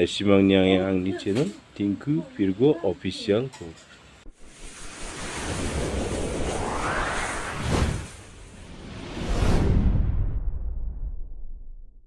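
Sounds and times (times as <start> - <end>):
rushing whoosh sound effect: 4.3 - 11.2.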